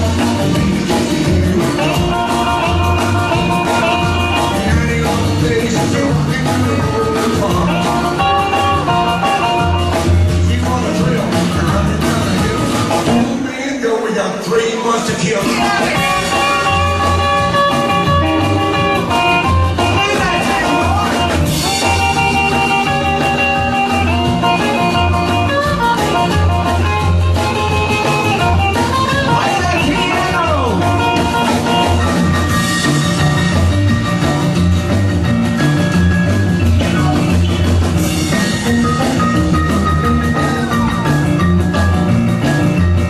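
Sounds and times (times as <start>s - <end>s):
bass line: 0.0s - 13.5s, 15.2s - 43.0s
drums: 0.0s - 43.0s
rock and roll band playing: 0.0s - 43.0s
guitar picked notes: 15.9s - 43.0s.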